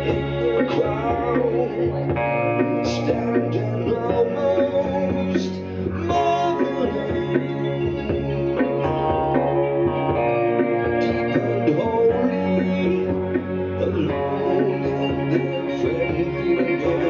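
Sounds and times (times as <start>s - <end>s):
man singing into microphone: 0.0s - 10.0s, 10.7s - 17.0s
amplified band with bass line: 0.0s - 17.0s.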